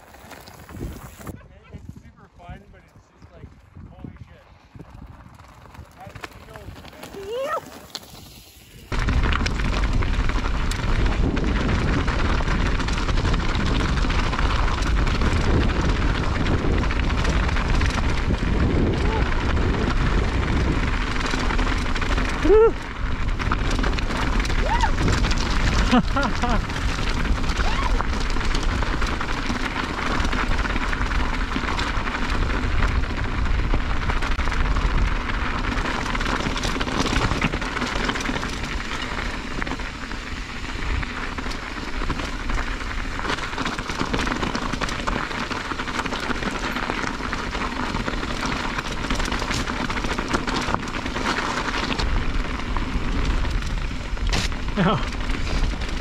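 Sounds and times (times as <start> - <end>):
wind rumble on microphone: 0.0 - 56.0.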